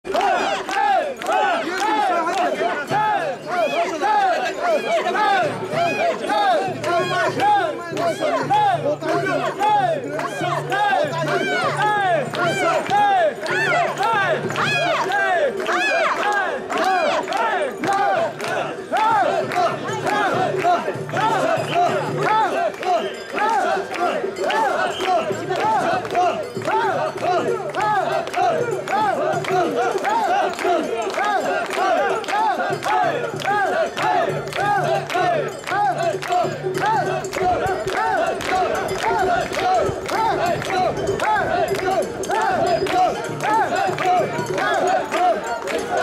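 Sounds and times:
crowd chanting in unison: 0.0 - 46.0.

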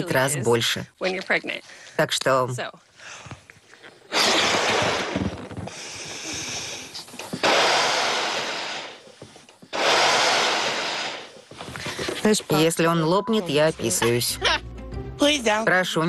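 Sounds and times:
person blowing up balloon: 4.0 - 12.0.

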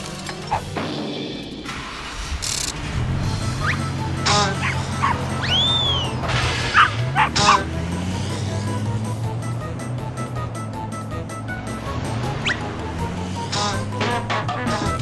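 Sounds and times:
cartoon background music: 0.0 - 15.0
cartoon dog yipping and barking: 0.4 - 0.7, 3.6 - 7.7, 12.4 - 12.7
whistling sound effect: 3.6 - 4.4, 5.4 - 6.2, 12.4 - 12.7.

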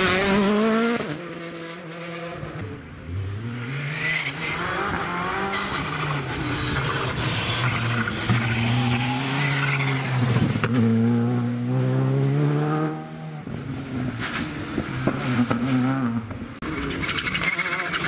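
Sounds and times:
rally car approaching: 0.0 - 18.0.

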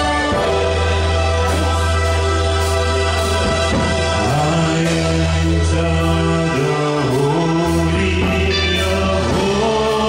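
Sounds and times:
choir singing: 0.0 - 10.0
low accompaniment: 0.0 - 10.0.

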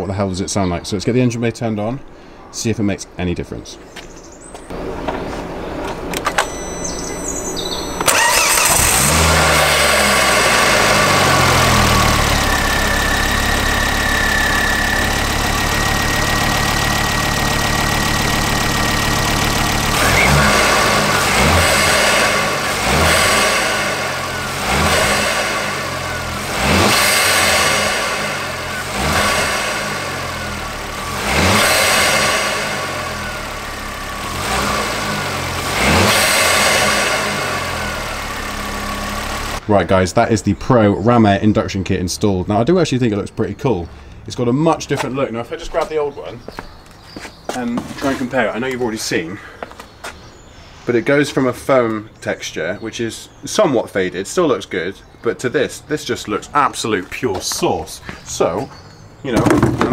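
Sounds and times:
car engine idling: 4.7 - 50.6
car engine starting: 4.7 - 59.9
engine revving: 6.1 - 39.7.

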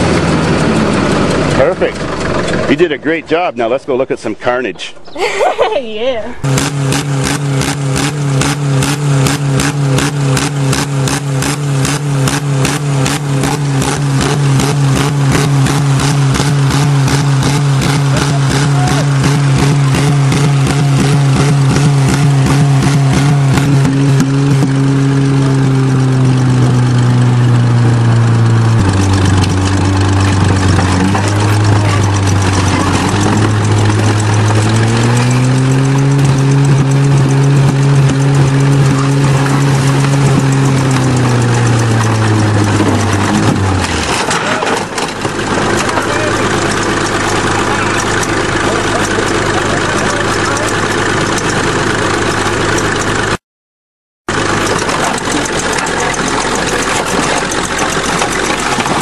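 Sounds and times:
bulldozer diesel engine running: 0.0 - 53.4, 54.3 - 59.0.

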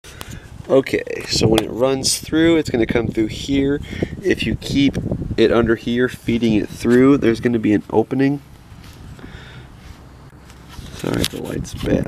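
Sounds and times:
faint rustling: 7.7 - 12.0.

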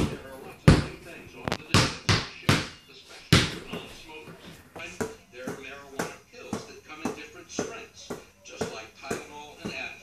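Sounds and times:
basketball bouncing: 0.0 - 1.0, 1.7 - 3.9, 4.8 - 9.9.

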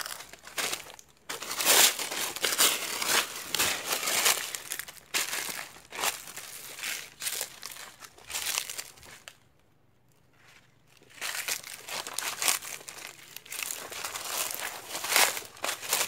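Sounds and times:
footsteps crunching dry leaves: 0.0 - 9.4, 10.4 - 16.0.

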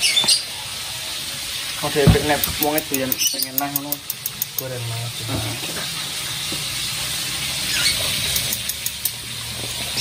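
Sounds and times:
fish frying in hot oil: 0.0 - 10.0
sharp oil crackles: 5.6 - 10.0.

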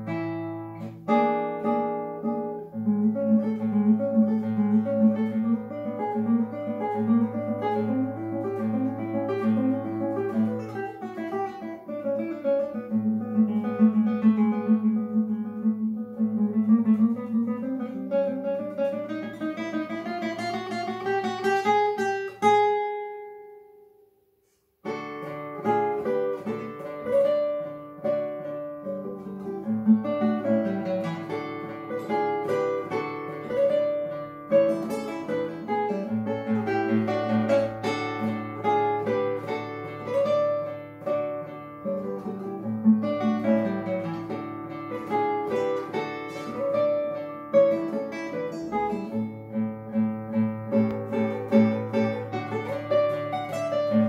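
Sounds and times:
classical guitar plucked: 0.0 - 54.0.

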